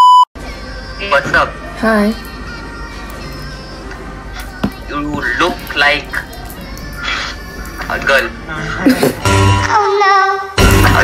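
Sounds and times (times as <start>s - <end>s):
background music: 8.8s - 11.0s.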